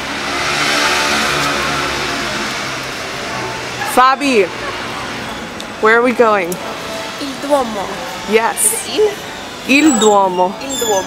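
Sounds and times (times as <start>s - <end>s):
vehicle engine passing: 0.0s - 9.6s.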